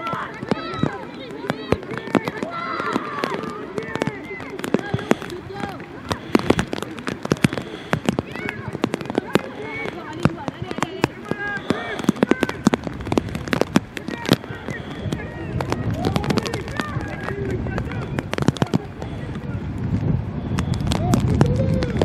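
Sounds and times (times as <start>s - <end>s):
young players shouting: 0.0s - 6.6s, 7.5s - 12.8s.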